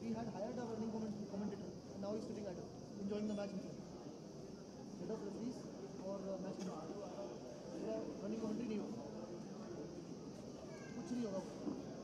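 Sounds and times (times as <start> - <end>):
open-air stadium ambience: 0.0 - 12.0.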